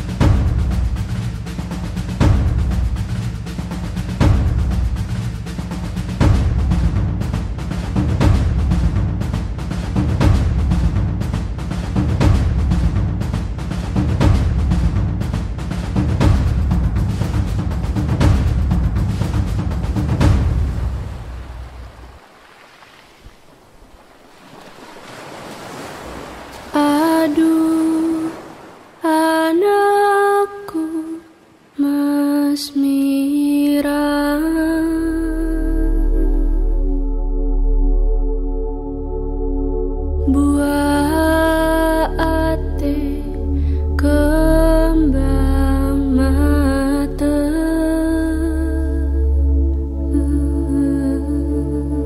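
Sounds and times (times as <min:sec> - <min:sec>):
deep drum hits: 0:00.0 - 0:22.1
surf washing over rocks: 0:00.0 - 0:33.8
low sustained drone: 0:47.2 - 0:52.0.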